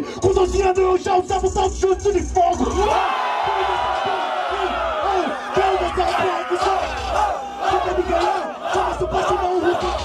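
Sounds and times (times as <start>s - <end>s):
crowd yelling and cheering: 2.1s - 10.0s.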